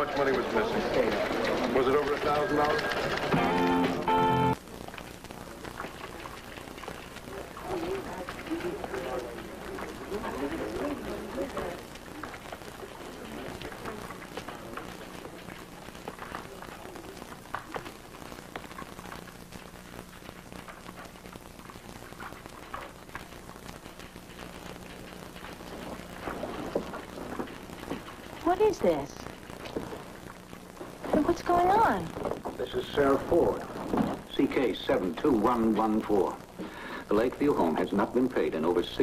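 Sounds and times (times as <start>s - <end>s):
steady low hum: 0.7s - 39.0s
steady hiss: 3.2s - 39.0s.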